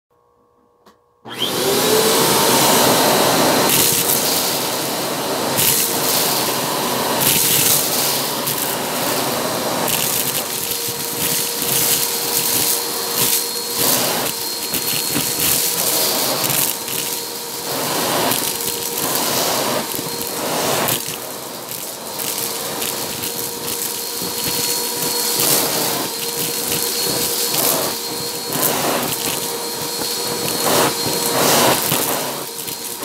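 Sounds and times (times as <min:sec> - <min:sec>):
vacuum cleaner motor whine: 0:00.2 - 0:33.0
gravel rattling up a tube: 0:09.8 - 0:33.0.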